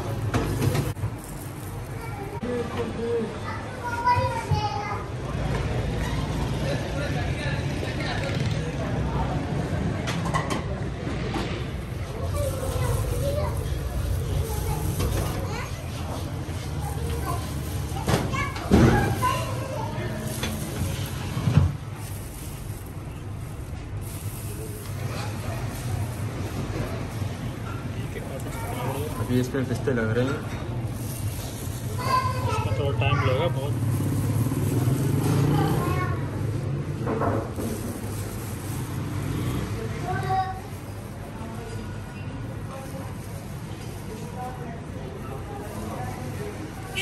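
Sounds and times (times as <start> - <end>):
people talking: 0.0 - 47.0
traffic rumble: 0.0 - 47.0.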